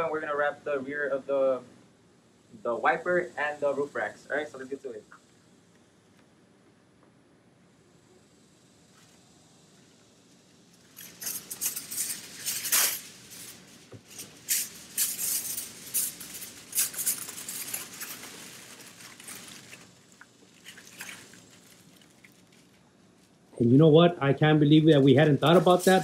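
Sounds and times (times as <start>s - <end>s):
aluminum foil crinkling: 10.8s - 23.4s, 25.2s - 26.0s.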